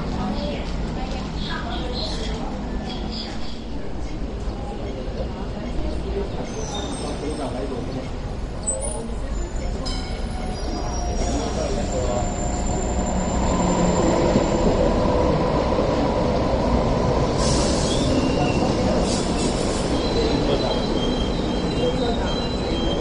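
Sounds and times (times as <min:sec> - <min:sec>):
train rumbling on rails: 0:00.0 - 0:23.0.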